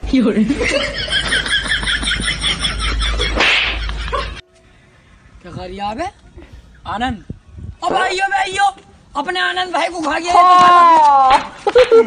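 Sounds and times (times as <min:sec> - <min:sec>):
laughter: 0:00.5 - 0:04.4
whip crack: 0:03.4 - 0:03.8.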